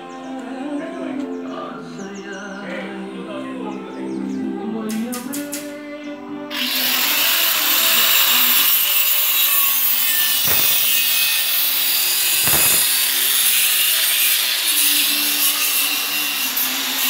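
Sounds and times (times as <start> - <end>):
power tool hissing on wood: 6.5 - 17.0.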